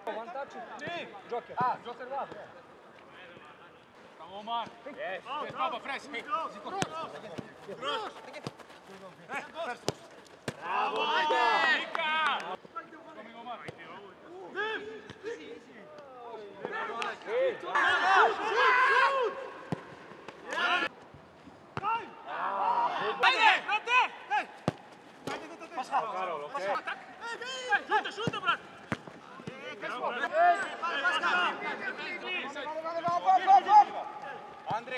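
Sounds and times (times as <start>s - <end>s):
players shouting: 5.2s - 12.6s, 16.0s - 20.9s, 21.8s - 34.9s
football being kicked: 6.7s - 8.8s, 9.8s - 10.7s, 24.6s - 25.5s.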